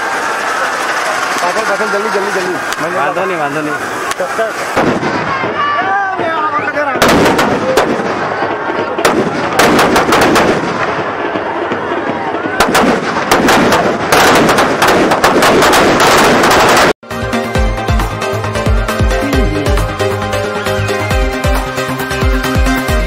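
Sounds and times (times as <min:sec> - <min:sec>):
crowd shouting: 0:00.0 - 0:14.2
firecrackers banging and crackling: 0:00.0 - 0:17.0.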